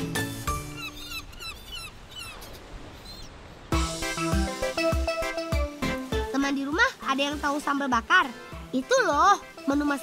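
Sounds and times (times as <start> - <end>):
birds chirping: 0.0 - 6.4.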